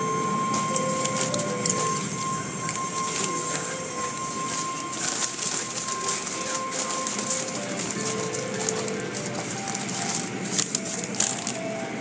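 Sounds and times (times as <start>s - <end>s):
car wash machinery running: 0.0s - 12.0s
steady high-pitched tone: 0.0s - 12.0s
rattles and clicks: 0.5s - 12.0s.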